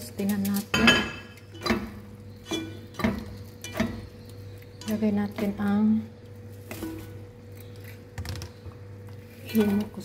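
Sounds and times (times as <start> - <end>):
cookware clinking and knocking: 0.7 - 1.9.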